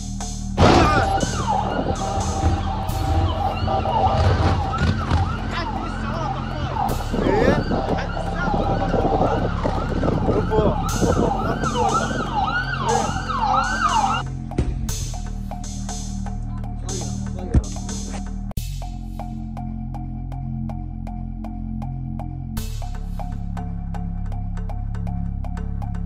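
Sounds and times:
background music: 0.0 - 26.0
emergency vehicle sirens: 0.6 - 14.3.

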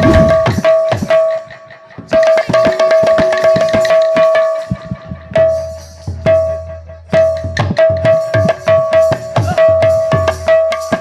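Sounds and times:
barrel drum played by hand: 0.0 - 11.0.

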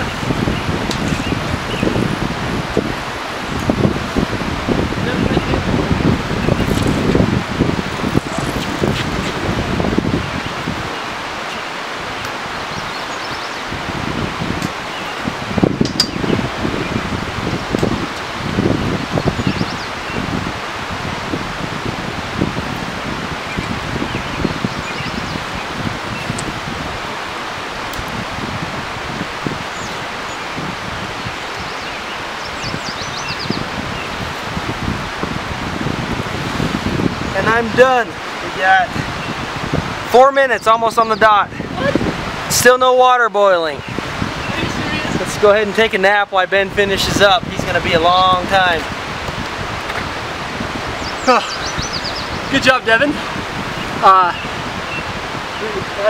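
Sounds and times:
low gusts and bumps: 0.0 - 56.0
wind rushing through trees: 0.0 - 56.0.

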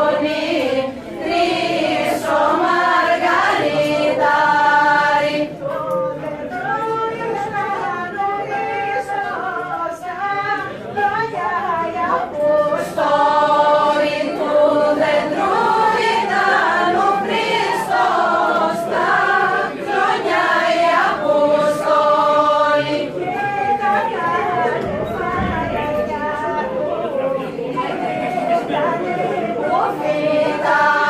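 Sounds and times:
mixed choir singing carol: 0.0 - 31.0.

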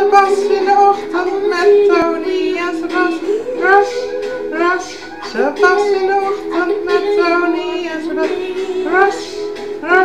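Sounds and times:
music: 0.0 - 10.0
person singing: 0.0 - 10.0.

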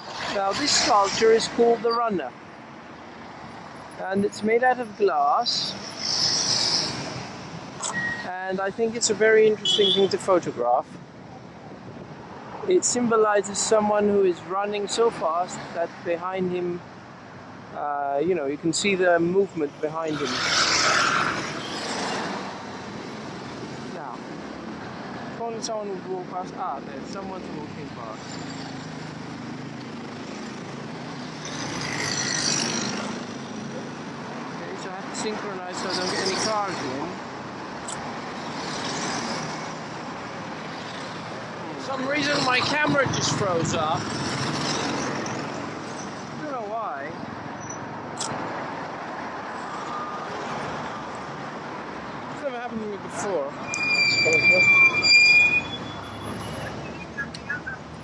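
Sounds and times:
road traffic passing: 0.0 - 58.0
motor scooters passing: 20.1 - 22.6, 28.2 - 34.2.

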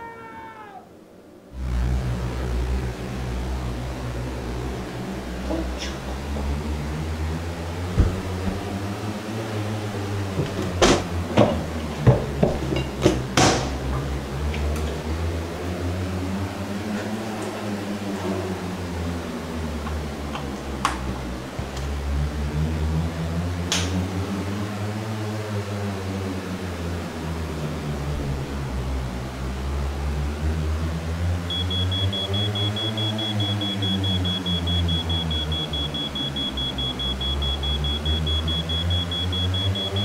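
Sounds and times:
cat yowling: 0.0 - 0.9
steady low hum: 1.5 - 13.0
loud low rumble with hum: 1.5 - 16.8, 26.4 - 40.0.

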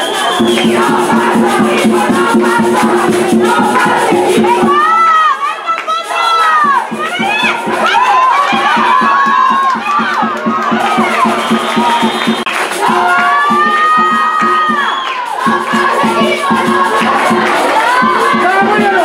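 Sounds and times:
steady rapid beat: 0.0 - 5.3, 6.2 - 19.0
crowd cheering and shouting: 0.0 - 19.0.

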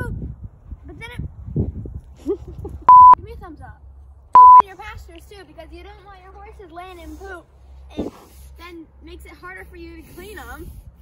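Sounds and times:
girl talking: 0.0 - 0.2, 0.8 - 1.3, 3.2 - 3.8, 4.6 - 10.6
electronic censor bleep: 2.9 - 3.2, 4.4 - 4.6.

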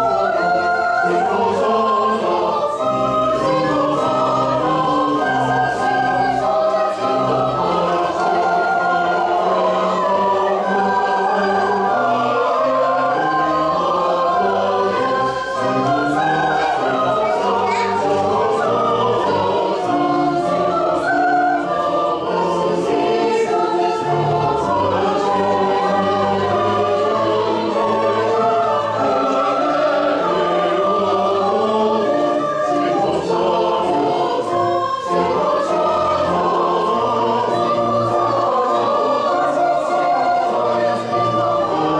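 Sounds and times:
church choir singing: 0.0 - 41.9.

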